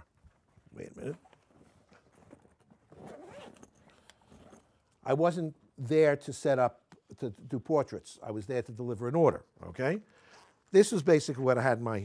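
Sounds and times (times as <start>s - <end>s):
rustling of a case: 0.2s - 4.8s
faint zipper: 1.0s - 4.8s, 10.1s - 11.0s.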